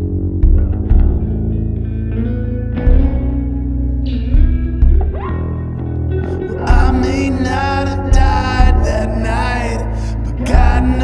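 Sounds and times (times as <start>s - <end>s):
deep booming kick drum: 0.0s - 1.7s, 2.8s - 5.5s, 6.7s - 7.3s, 8.1s - 9.2s, 10.5s - 11.0s
bass line: 0.0s - 11.0s
electric guitar lick: 0.0s - 11.0s.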